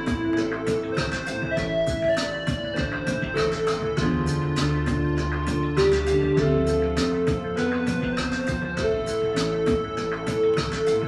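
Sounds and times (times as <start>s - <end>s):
organ-like keyboard chords: 0.0s - 11.0s
steady drum beat: 0.0s - 11.0s.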